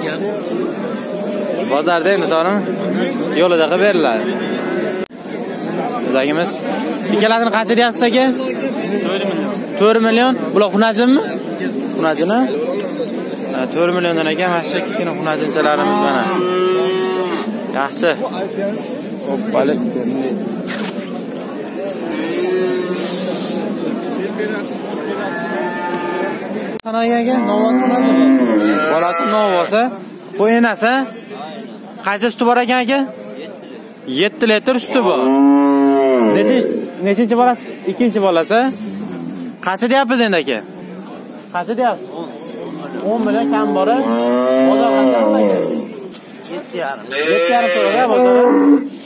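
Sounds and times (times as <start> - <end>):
crowd chatter: 0.0 - 49.0
young cattle mooing: 15.6 - 17.5, 27.4 - 29.8, 43.3 - 45.9, 47.1 - 48.9
sheep bleating: 28.0 - 29.8, 47.1 - 48.8.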